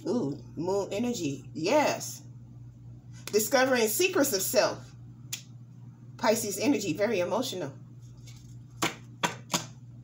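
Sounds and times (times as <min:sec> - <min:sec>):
hand tapping cards on table: 0:08.8 - 0:09.8.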